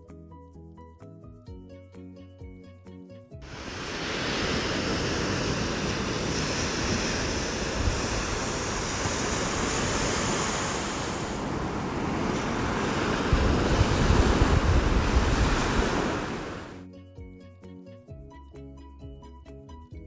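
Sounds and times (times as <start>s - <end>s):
ocean surf on beach: 3.4s - 16.8s
wind rumbling on microphone: 3.5s - 16.8s.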